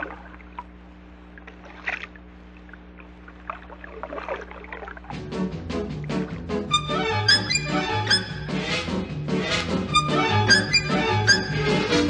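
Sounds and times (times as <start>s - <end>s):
record low hum: 0.0s - 12.0s.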